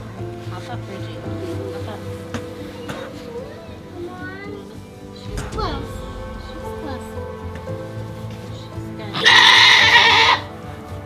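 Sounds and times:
goat bleating: 9.2s - 10.5s.

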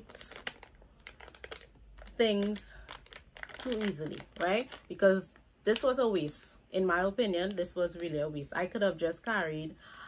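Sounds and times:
plastic package crinkling: 0.0s - 6.2s.

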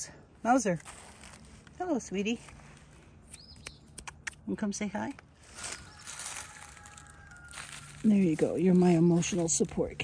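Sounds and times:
dry leaves crunching and rustling: 0.8s - 1.8s, 5.3s - 10.0s.

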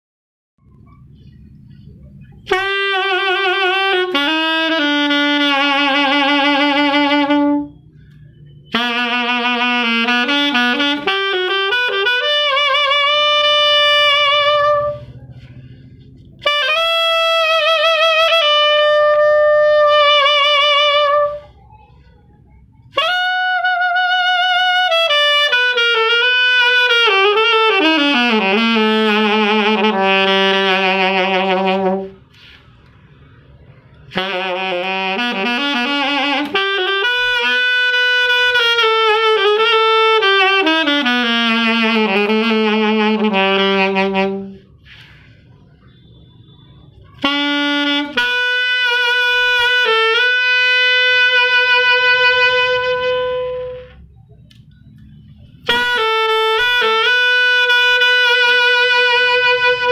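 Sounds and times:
alto saxophone melody: 0.8s - 59.9s
saxophonist breathing: 14.8s - 16.4s, 32.2s - 33.5s, 44.5s - 46.0s.

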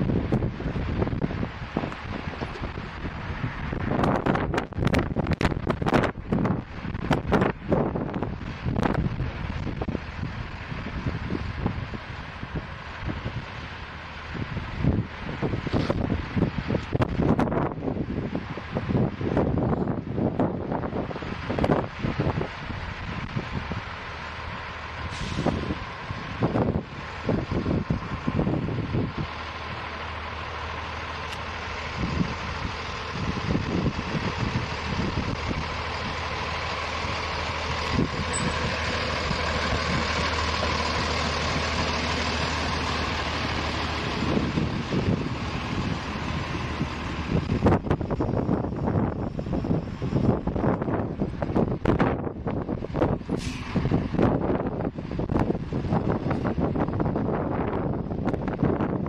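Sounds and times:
rail truck passing: 0.0s - 59.0s
wind buffeting microphone: 0.0s - 59.0s.

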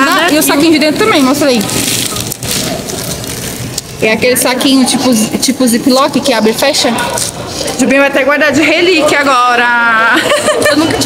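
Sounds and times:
plastic bags crinkling: 0.0s - 7.7s.

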